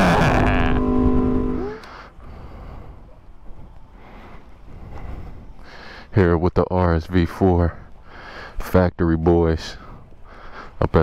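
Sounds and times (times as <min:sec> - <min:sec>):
low steady outdoor rumble: 0:00.0 - 0:11.0.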